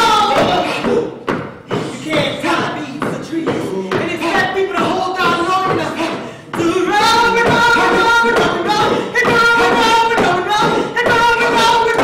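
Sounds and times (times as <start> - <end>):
thumps: 0.0 - 12.0.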